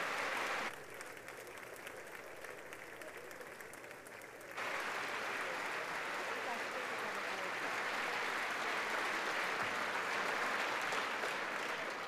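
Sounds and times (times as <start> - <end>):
crowd applause: 0.0 - 12.0.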